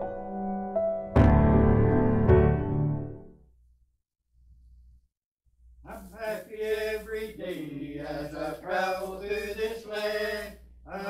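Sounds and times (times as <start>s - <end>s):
group singing gospel: 5.9s - 11.0s.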